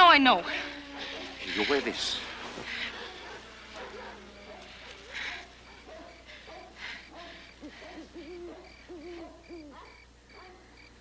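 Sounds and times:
crickets chirping: 0:00.0 - 0:11.0
short breaths: 0:00.4 - 0:03.8, 0:04.6 - 0:08.2
owl hooting: 0:00.4 - 0:10.5.

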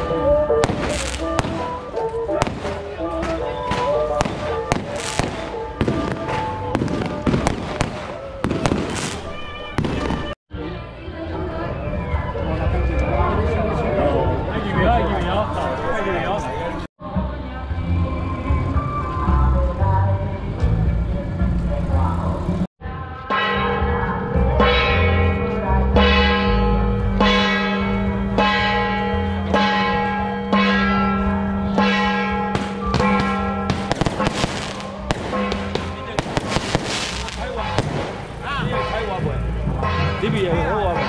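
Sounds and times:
firecrackers cracking: 0:00.6 - 0:10.4, 0:32.6 - 0:38.6.

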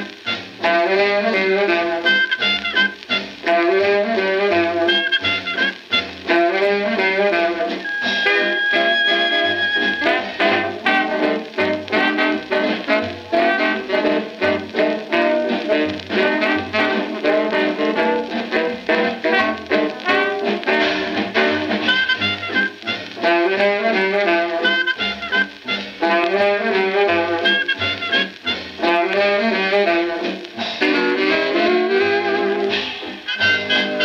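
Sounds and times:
swing band playing: 0:00.0 - 0:34.0.

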